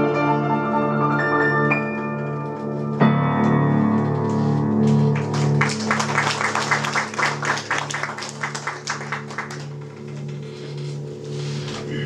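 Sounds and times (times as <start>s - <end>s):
piano chord ringing: 0.0s - 5.2s
audience applauding: 4.8s - 11.0s.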